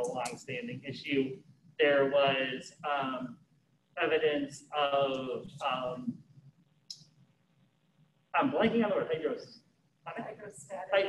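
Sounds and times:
person speaking: 0:00.0 - 0:03.3, 0:04.0 - 0:06.1, 0:08.4 - 0:09.5, 0:10.1 - 0:11.0.

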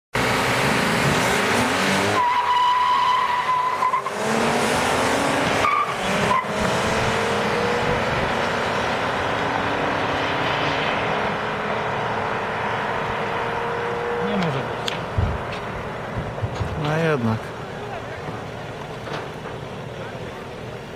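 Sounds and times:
car engines revving: 0:00.1 - 0:20.9
tyres squealing: 0:02.1 - 0:04.4.

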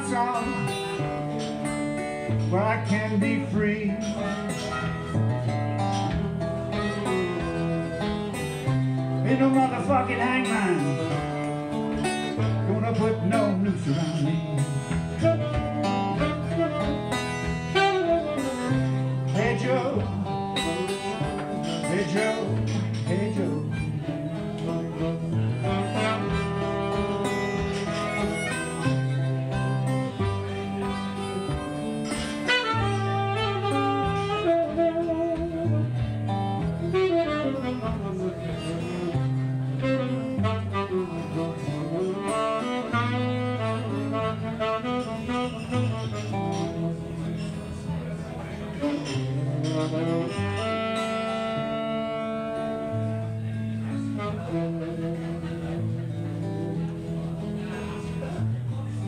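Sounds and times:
harmonica: 0:00.0 - 0:57.1
acoustic guitar chords: 0:00.0 - 0:59.0
saxophone: 0:03.4 - 0:09.8, 0:10.4 - 0:58.2.

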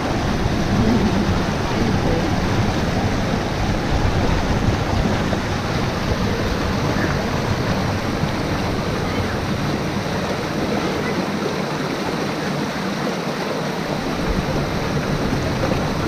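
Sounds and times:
stream rushing over boulders: 0:00.0 - 0:16.0.

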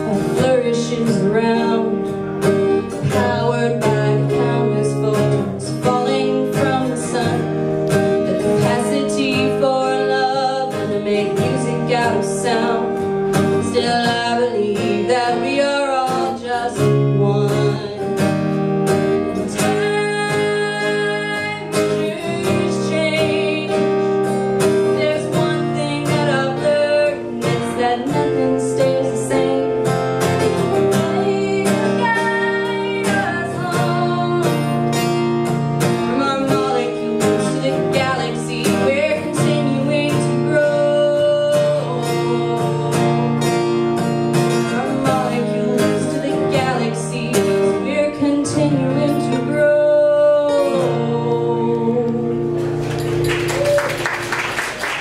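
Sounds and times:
woman singing: 0:00.0 - 0:52.7
strummed acoustic guitar: 0:00.0 - 0:54.8.

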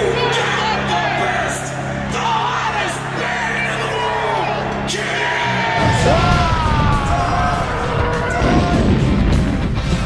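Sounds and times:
yelled vocal line: 0:00.0 - 0:09.0
loud rock music: 0:00.0 - 0:10.0
drums: 0:05.7 - 0:10.0.

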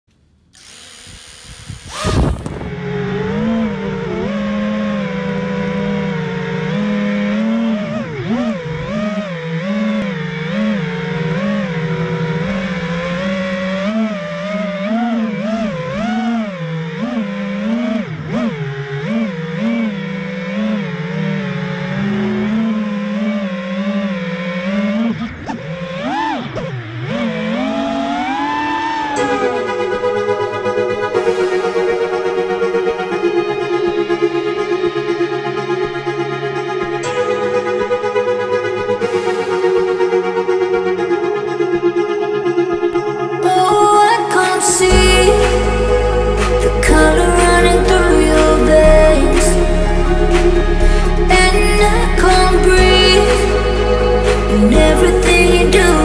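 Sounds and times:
drone motors whining: 0:00.4 - 0:56.0
electronic music: 0:27.5 - 0:56.0.

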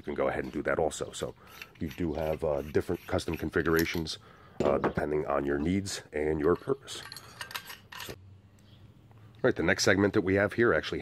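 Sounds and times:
faint rubbing: 0:00.4 - 0:04.1
metal handle segments clinking: 0:05.6 - 0:08.2.

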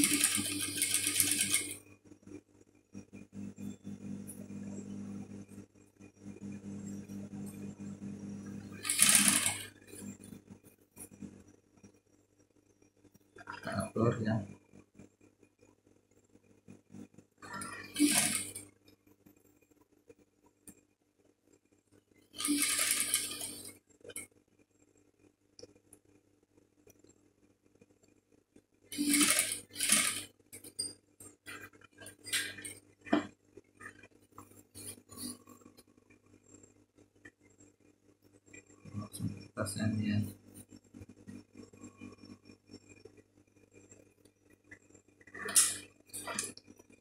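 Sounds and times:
industrial sewing machine stitching: 0:00.0 - 0:01.8, 0:08.7 - 0:10.3, 0:17.5 - 0:18.6, 0:22.4 - 0:23.7, 0:28.9 - 0:30.8, 0:32.3 - 0:32.8
low steady hum: 0:00.0 - 0:15.6, 0:30.5 - 0:47.0.

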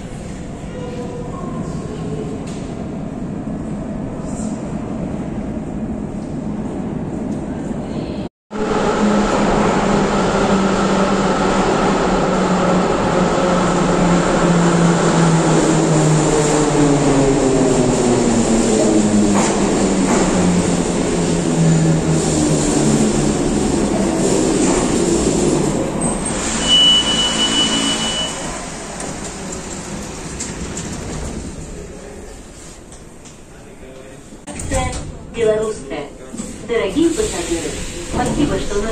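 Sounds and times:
wheels rumbling on rail: 0:00.0 - 0:38.9
high steady squeal: 0:26.0 - 0:28.6.

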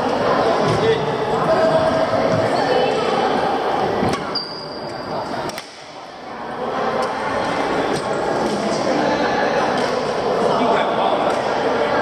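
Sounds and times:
many people talking: 0:00.0 - 0:12.0.

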